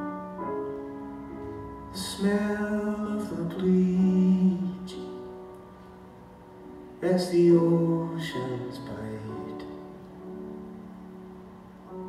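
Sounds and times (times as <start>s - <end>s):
grand piano chord: 0.0s - 12.0s
person singing: 1.9s - 5.4s, 7.0s - 10.0s.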